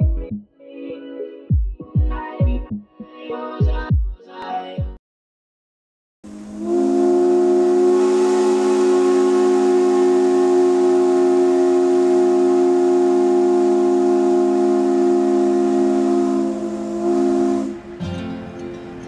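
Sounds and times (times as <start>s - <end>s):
ship horn long blast: 6.3s - 18.0s.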